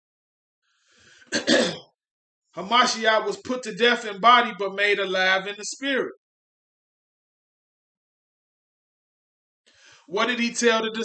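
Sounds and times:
man coughing: 1.3s - 1.9s.

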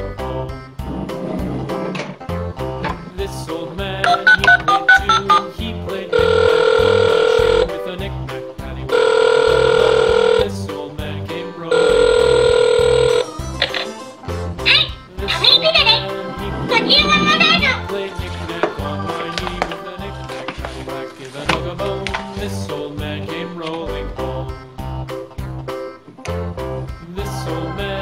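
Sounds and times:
background music: 0.0s - 28.0s
electronic ringing tones: 4.1s - 5.5s, 6.1s - 7.7s, 8.9s - 10.4s, 11.7s - 13.2s
keypad dialing beeps: 4.1s - 5.5s.

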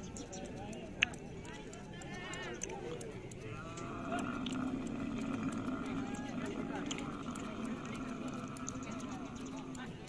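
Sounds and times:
busy market voices: 0.0s - 10.0s
wavering animal bleat: 3.5s - 9.3s.

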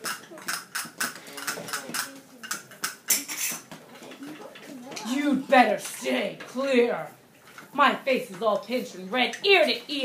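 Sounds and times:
children playing percussion: 0.0s - 6.0s.

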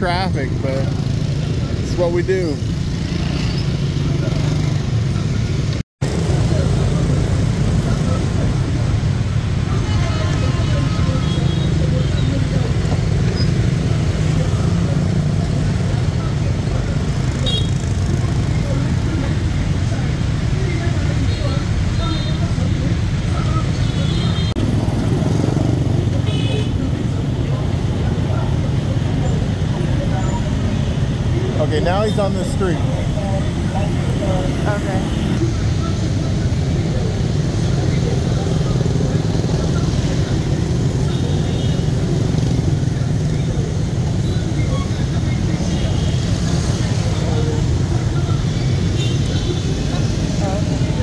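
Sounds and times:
street traffic rumble: 0.0s - 51.0s.

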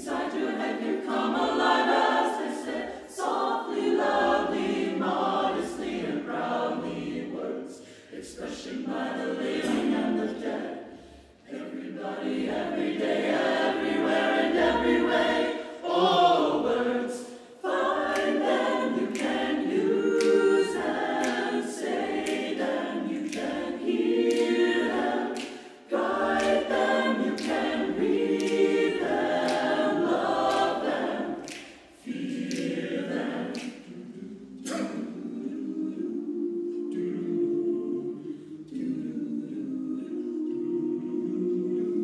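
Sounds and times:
choir singing a cappella: 0.0s - 42.0s.

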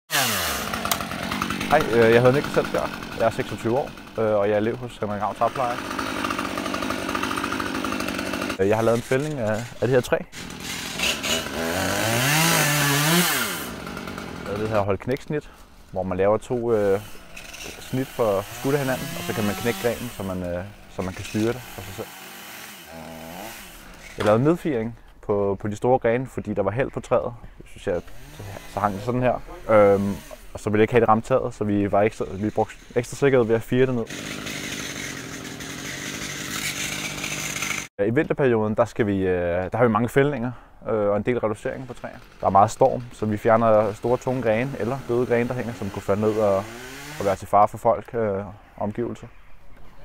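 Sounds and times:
chainsaw engine running: 0.1s - 24.6s, 27.8s - 37.9s, 41.4s - 47.5s.

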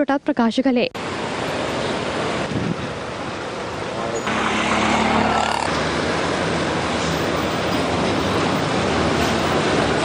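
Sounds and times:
low engine hum: 1.0s - 10.0s
road traffic rushing: 1.0s - 10.0s.

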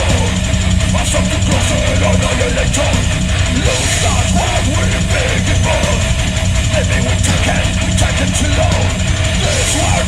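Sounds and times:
bass guitar: 0.0s - 10.0s
distorted electric guitars: 0.0s - 10.0s
fast drumming: 0.0s - 10.0s.

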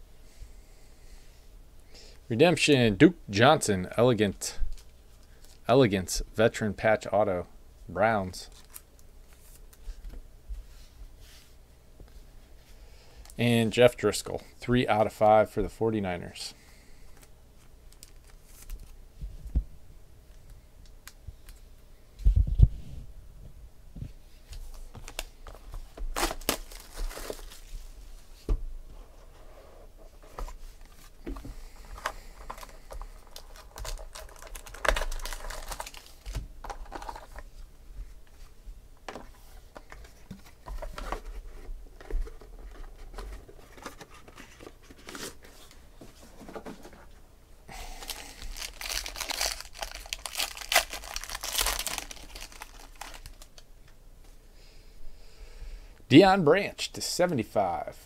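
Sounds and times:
wrapping crinkling and tearing: 17.9s - 19.0s, 24.7s - 27.8s, 31.9s - 37.4s, 47.8s - 53.6s.

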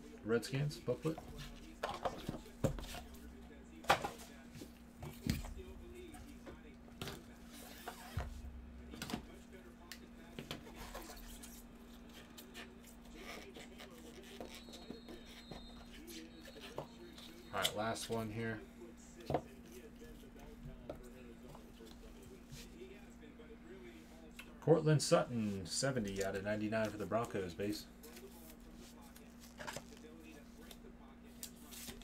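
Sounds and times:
low electrical hum: 0.0s - 32.0s.

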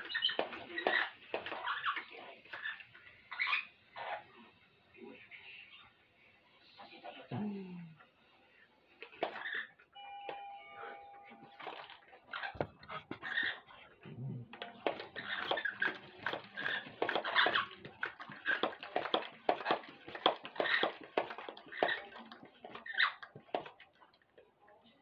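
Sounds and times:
brief held tone: 10.0s - 11.6s.

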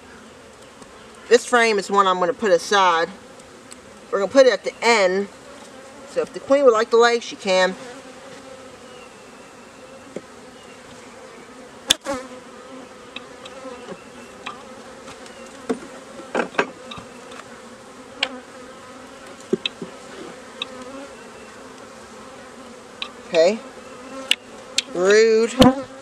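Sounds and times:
honeybees buzzing: 0.0s - 26.0s.

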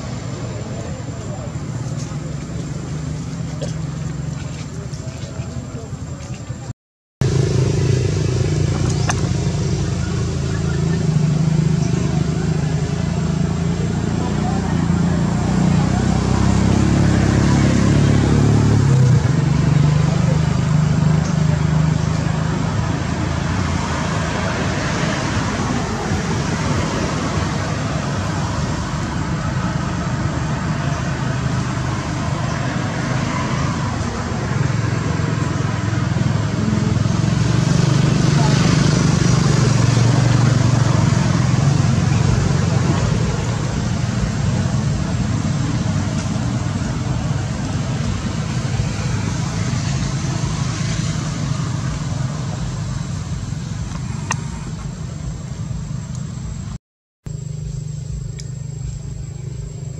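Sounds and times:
road traffic rumble: 0.0s - 59.9s
vehicle passing: 0.0s - 59.9s.

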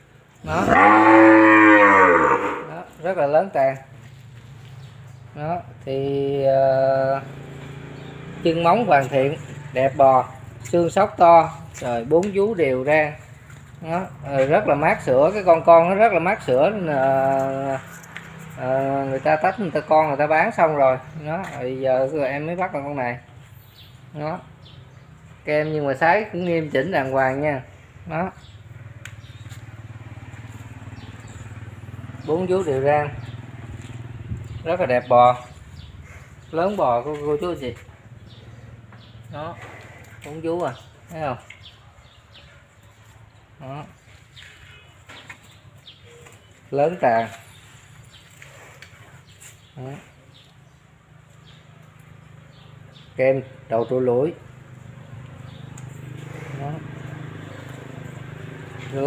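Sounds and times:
cow mooing: 0.4s - 2.9s
small engine idling: 28.4s - 34.6s.

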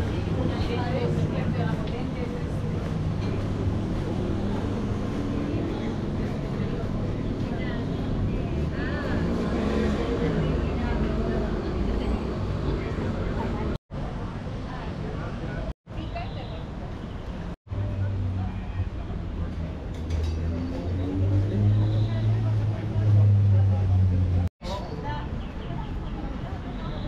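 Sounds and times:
low traffic rumble: 0.0s - 27.0s
passersby talking: 0.0s - 27.0s.

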